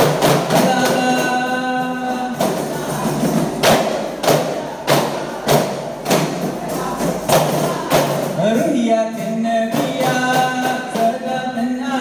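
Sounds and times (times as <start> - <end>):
frame drums beating steady rhythm: 0.0 - 12.0.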